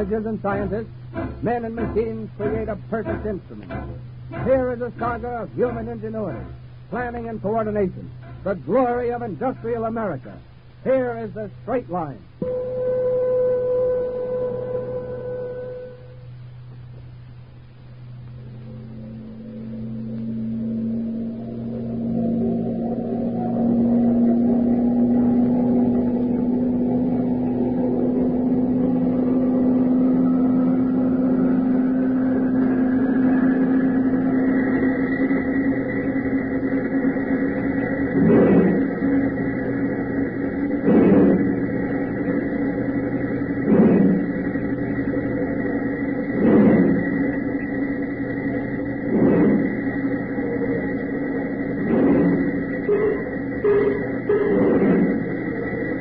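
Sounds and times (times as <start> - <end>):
heavy regular machine strikes: 0.0 - 12.4, 17.7 - 56.0
steady mechanical drone: 0.0 - 56.0.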